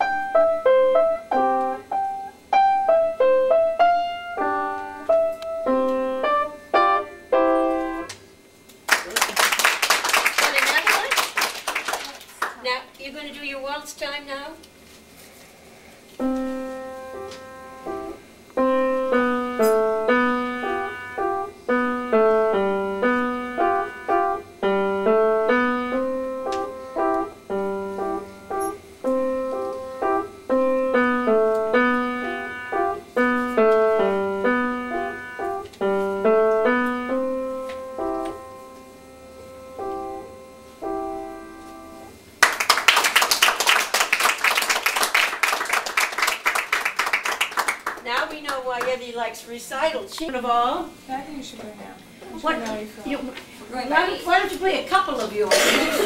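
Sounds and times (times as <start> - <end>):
piano waltz: 0.0 - 8.1, 16.2 - 42.3
audience applauding: 8.9 - 12.6, 42.4 - 48.6.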